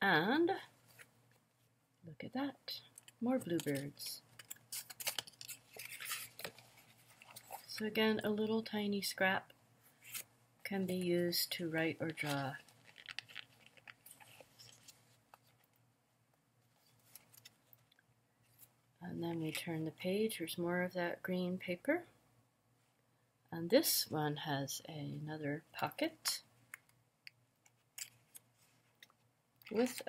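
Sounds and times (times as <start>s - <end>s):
paper crinkling and rustling: 2.9s - 7.9s, 12.0s - 15.8s, 16.8s - 17.8s, 29.7s - 30.0s
newspaper page turning: 3.0s - 7.9s, 12.1s - 15.7s.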